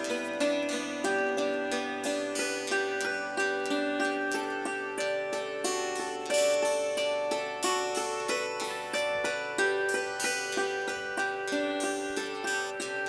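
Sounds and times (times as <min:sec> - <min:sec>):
acoustic guitar accompaniment: 0:00.0 - 0:13.0
hammered dulcimer melody: 0:00.0 - 0:13.0.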